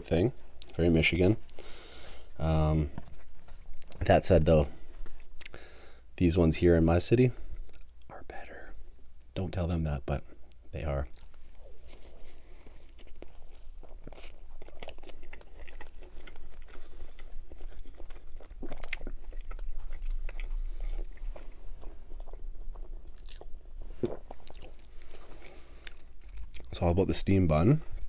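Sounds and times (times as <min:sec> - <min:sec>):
biting and chewing food: 0:10.5 - 0:26.8.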